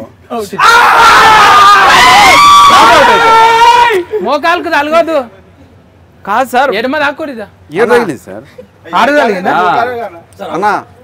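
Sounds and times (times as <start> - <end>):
men cheering and yelling: 0.4 - 4.8.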